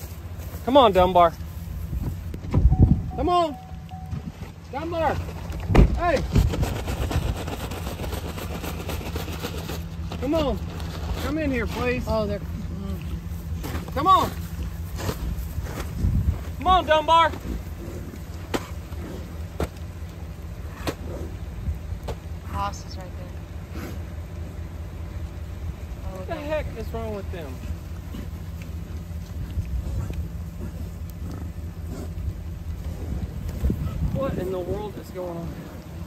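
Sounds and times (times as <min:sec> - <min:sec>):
steady low rumble: 0:00.0 - 0:36.0
vehicle engine idling: 0:00.0 - 0:36.0
paper sack rustling: 0:04.2 - 0:12.1.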